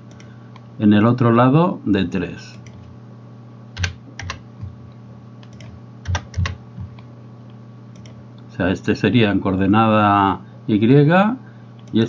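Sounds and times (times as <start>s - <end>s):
computer keyboard typing: 3.8s - 4.8s, 5.4s - 7.0s, 8.0s - 8.2s.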